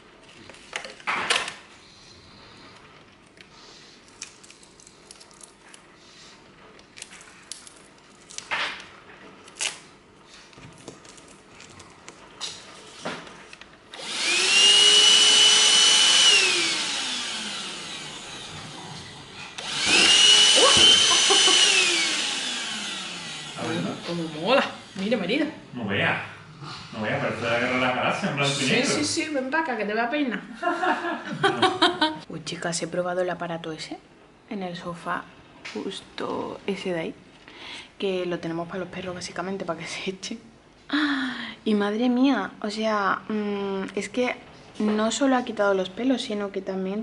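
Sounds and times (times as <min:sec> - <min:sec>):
vacuum cleaner motor whine: 0:13.9 - 0:25.4.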